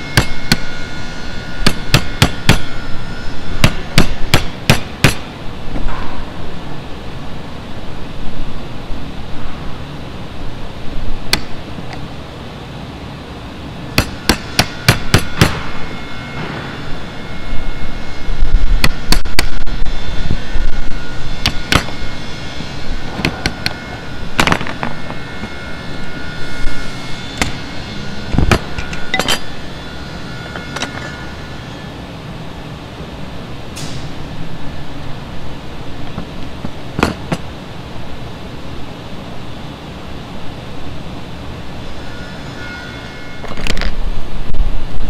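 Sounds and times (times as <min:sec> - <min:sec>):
hammer striking chisel: 0:00.1 - 0:00.7, 0:01.6 - 0:02.8, 0:03.6 - 0:05.3, 0:14.0 - 0:15.7, 0:21.4 - 0:22.0, 0:27.4 - 0:27.6, 0:37.0 - 0:37.4.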